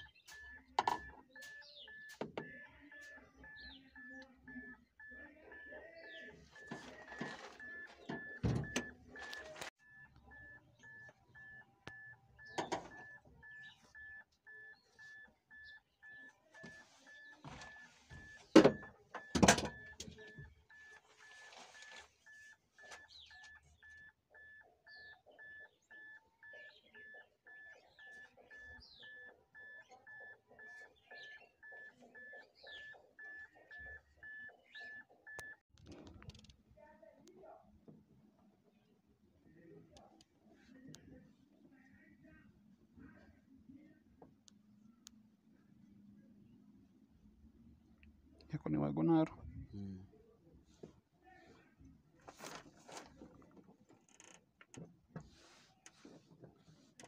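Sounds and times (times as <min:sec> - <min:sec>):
electronic warning beeper: 0:00.0 - 0:35.6.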